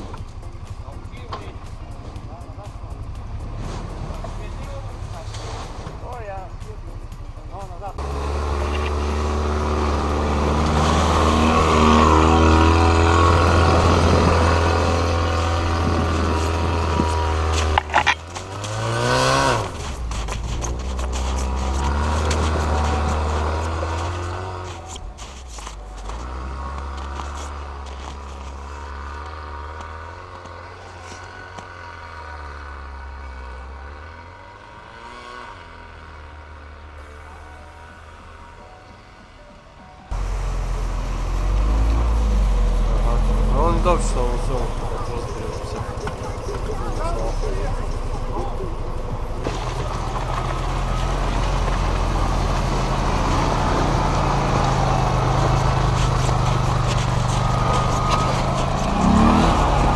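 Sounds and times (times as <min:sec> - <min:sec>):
quad bike engines revving: 0:00.0 - 0:38.4, 0:40.1 - 0:59.9.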